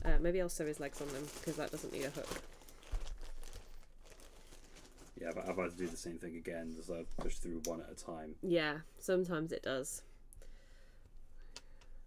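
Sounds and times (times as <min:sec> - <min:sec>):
rustling and crinkling: 0:00.6 - 0:07.4.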